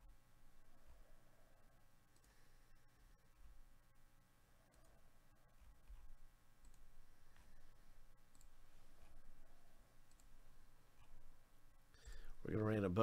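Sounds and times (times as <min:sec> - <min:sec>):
low steady hum: 0:00.0 - 0:13.0
computer mouse clicks: 0:02.1 - 0:02.4, 0:04.7 - 0:07.6, 0:08.3 - 0:09.3, 0:10.0 - 0:11.2.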